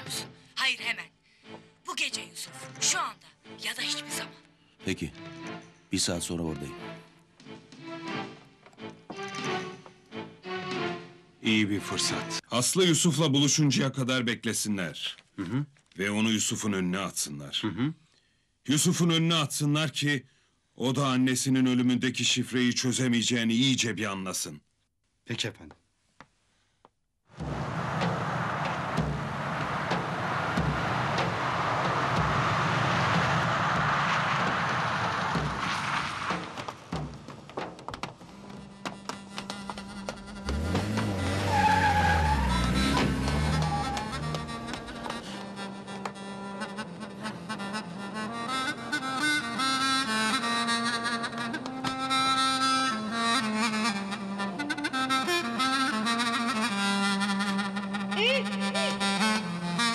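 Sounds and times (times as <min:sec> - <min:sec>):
vehicle engine and tyre noise: 0:27.3 - 0:46.2.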